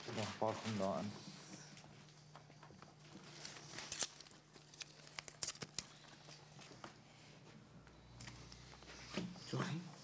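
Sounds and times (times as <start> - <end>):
paper rustling: 0.0 - 1.4, 2.8 - 6.9.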